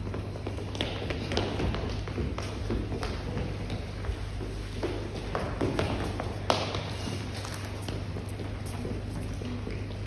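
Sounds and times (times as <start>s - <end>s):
children's footsteps on hard floor: 0.0s - 10.0s.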